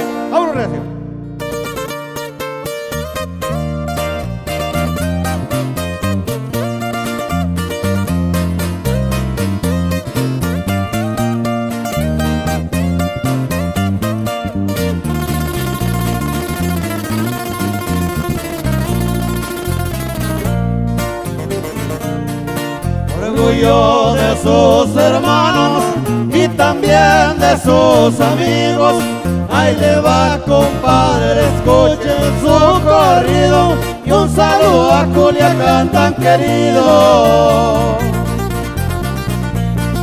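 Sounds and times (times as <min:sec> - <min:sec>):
electric bass line: 0:00.0 - 0:40.0
guitar strumming: 0:00.0 - 0:40.0
guitars picking: 0:00.0 - 0:40.0
person singing: 0:23.1 - 0:38.4.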